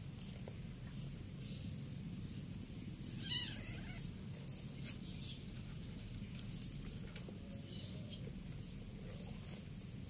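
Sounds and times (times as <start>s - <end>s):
kitten mewing: 3.2s - 4.1s.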